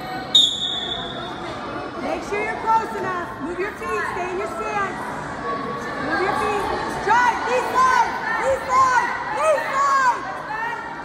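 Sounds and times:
referee's whistle blast: 0.3 - 1.2.

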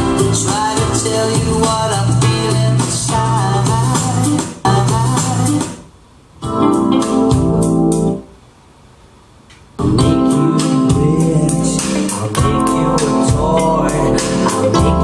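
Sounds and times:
pop music with keyboards on speakers: 0.0 - 8.3, 9.8 - 15.0.

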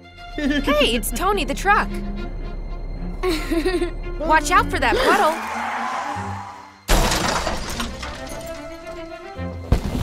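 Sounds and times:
background music: 0.0 - 10.0
cartoon crash smash: 6.9 - 8.1.

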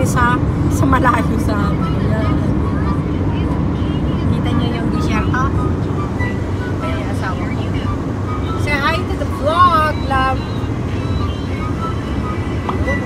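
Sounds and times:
road and engine rumble in car: 0.0 - 13.0.

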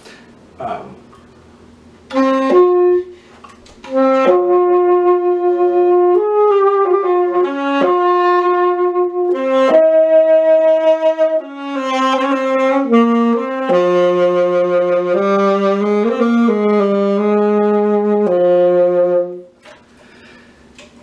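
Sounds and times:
solo saxophone melody: 2.1 - 19.7.

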